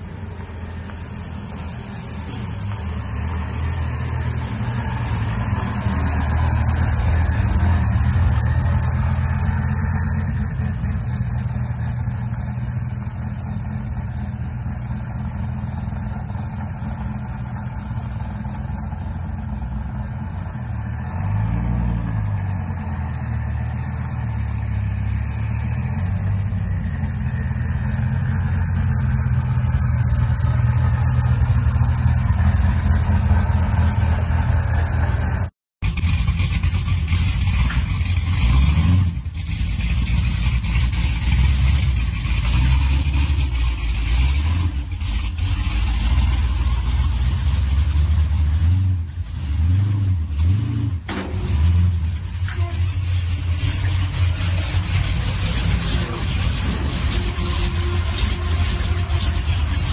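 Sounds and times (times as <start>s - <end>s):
car engines rumbling: 0.0s - 59.9s
engine revving: 2.7s - 59.9s.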